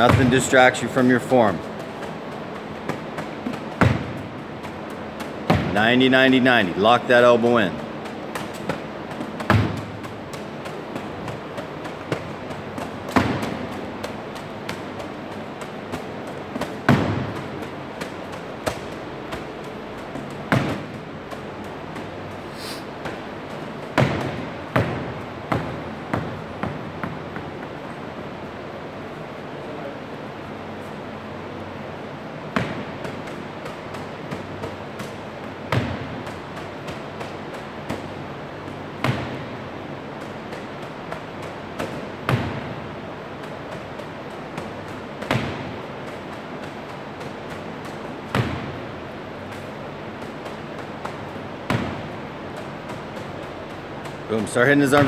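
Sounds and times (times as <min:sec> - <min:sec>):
balls thudding against wall: 0:00.0 - 0:29.4, 0:32.0 - 0:55.0.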